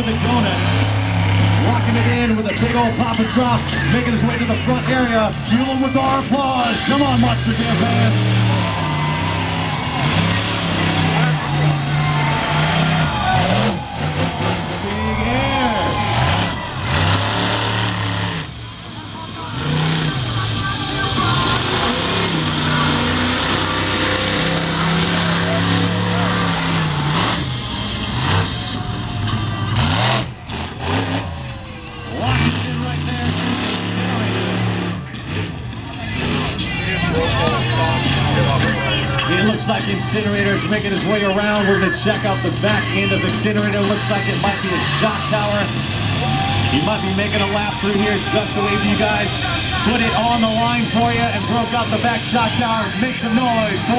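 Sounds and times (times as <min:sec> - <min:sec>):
monster truck engine revving: 0:00.0 - 0:53.9.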